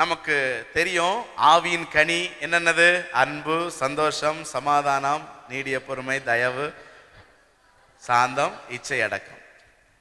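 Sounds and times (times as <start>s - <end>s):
man preaching through a microphone: 0.0s - 7.0s, 8.0s - 9.5s.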